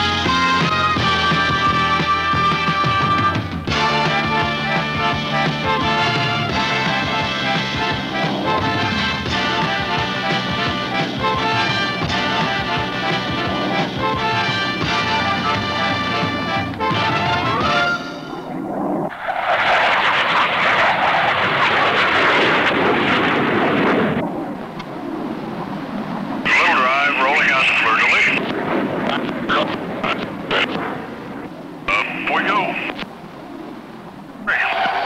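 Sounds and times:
music: 0:00.0 - 0:18.5
jet engine roar: 0:00.0 - 0:35.0
radio voice calls: 0:26.4 - 0:33.1, 0:34.4 - 0:35.0.

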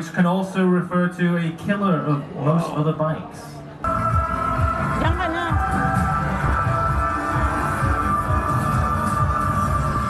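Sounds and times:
electronic music over loudspeakers: 0:03.8 - 0:10.0.

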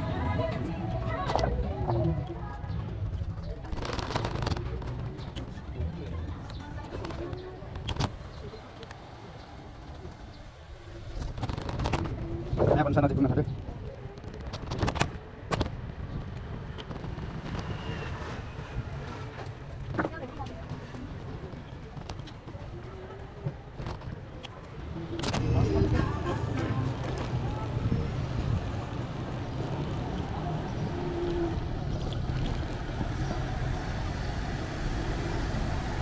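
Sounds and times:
traffic rumble: 0:00.0 - 0:36.0.

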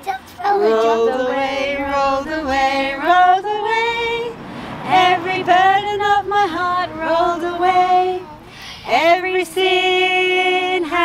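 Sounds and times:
women and children singing: 0:00.2 - 0:11.0.

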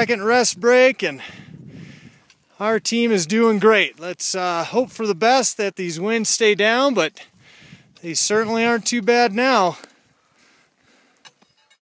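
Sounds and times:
faint outdoor hiss: 0:00.0 - 0:11.8.

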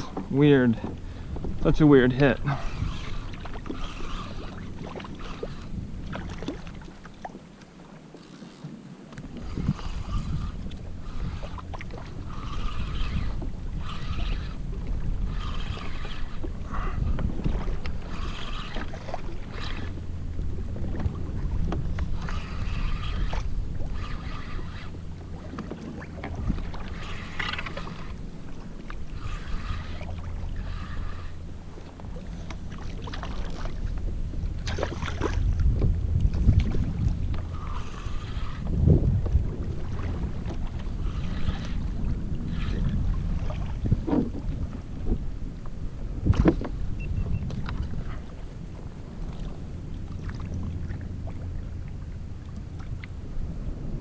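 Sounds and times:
wind buffeting microphone: 0:00.0 - 0:07.4, 0:08.5 - 0:54.0
water splashing against hull: 0:00.0 - 0:54.0.

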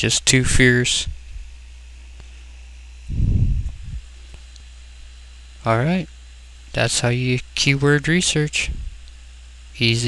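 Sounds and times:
recording hum and hiss: 0:00.0 - 0:10.0.

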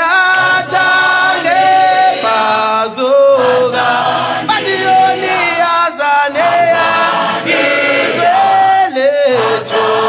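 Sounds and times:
group singing in harmony: 0:00.0 - 0:10.0.

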